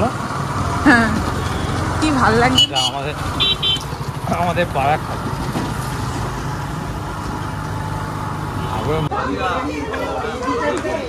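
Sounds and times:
road noise: 0.0s - 11.0s
small motorbike engine running: 0.7s - 6.6s.

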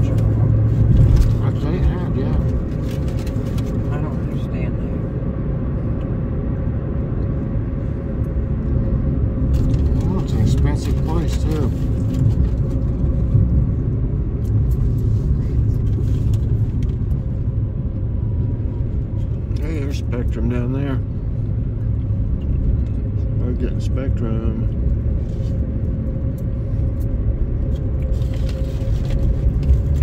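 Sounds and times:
car road and engine noise: 0.0s - 30.0s.

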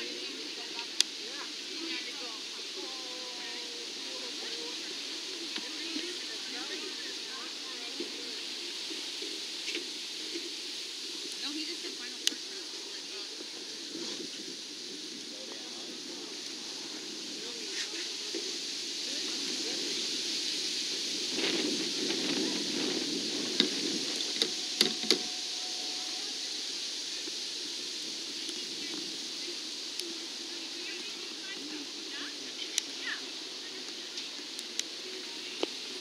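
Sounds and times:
murmured voices: 0.0s - 36.0s
steady hiss: 0.0s - 36.0s.

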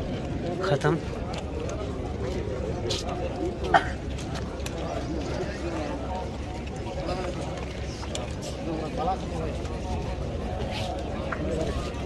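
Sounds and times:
crowd of men talking: 0.0s - 12.0s.

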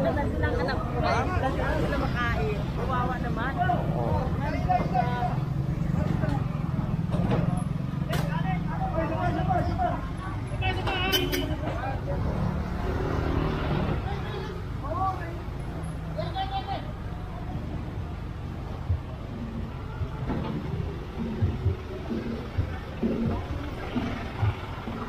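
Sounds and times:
people talking: 0.0s - 12.4s
vehicle engine running: 17.0s - 25.0s.

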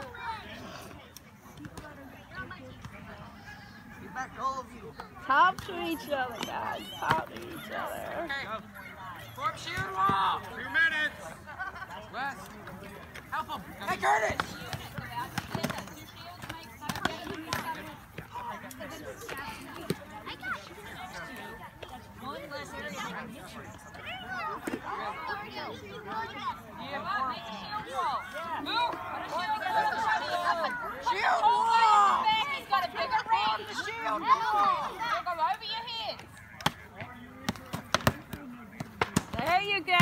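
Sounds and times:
children shouting: 24.0s - 36.0s.

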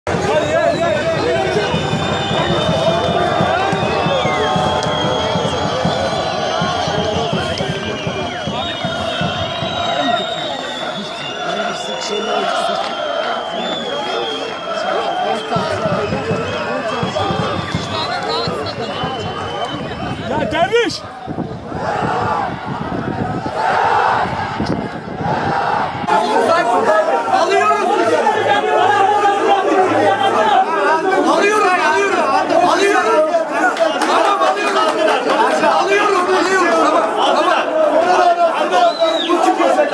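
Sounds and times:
crowd shouting: 0.1s - 39.9s
wind buffeting microphone: 15.6s - 26.1s.

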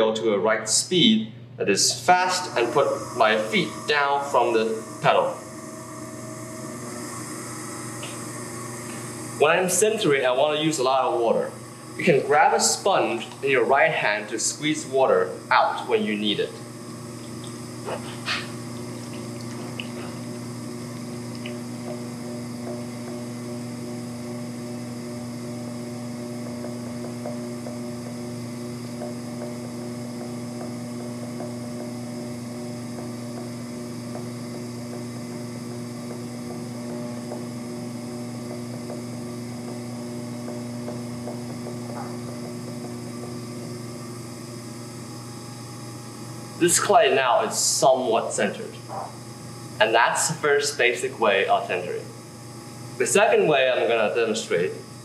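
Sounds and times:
pottery wheel motor humming: 0.0s - 55.0s.

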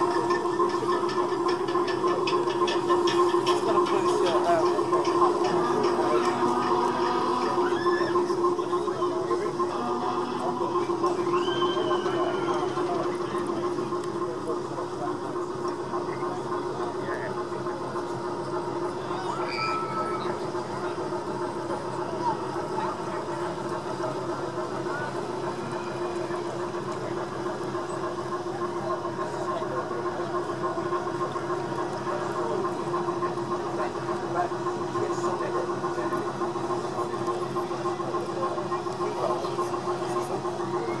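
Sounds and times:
people chattering: 0.0s - 41.0s
steady mechanical hum: 0.0s - 41.0s.

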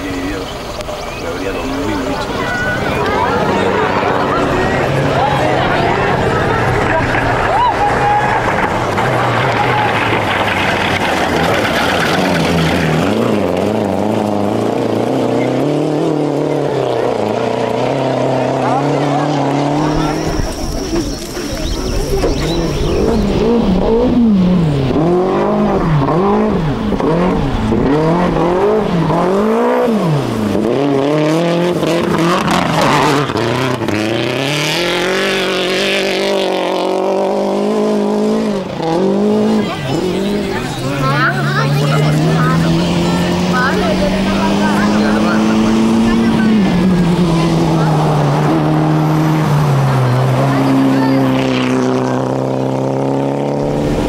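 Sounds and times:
car passing by: 0.0s - 54.0s
gravel and tyre noise: 0.0s - 54.0s
rally car engines revving: 0.0s - 54.0s.

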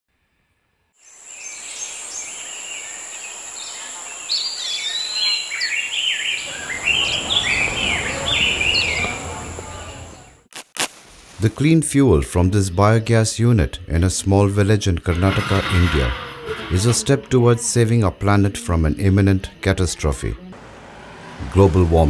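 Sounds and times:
birds chirping: 1.0s - 10.4s.

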